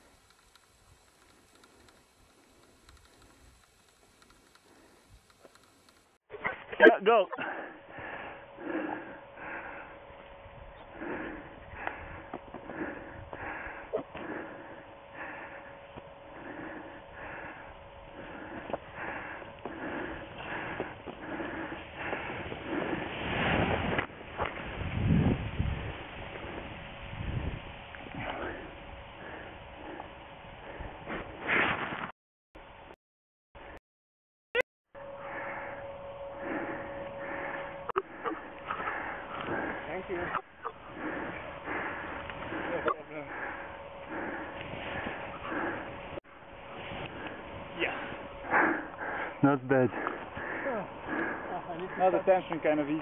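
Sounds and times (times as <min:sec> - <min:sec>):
person breathing hard: 0:07.3 - 0:31.4, 0:35.1 - 0:53.0.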